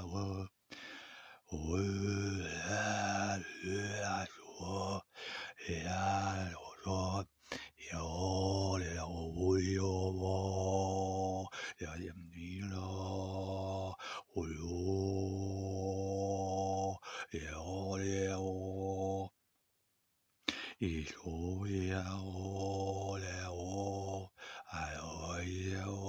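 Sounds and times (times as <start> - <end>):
man overtone singing: 1.5 - 19.3.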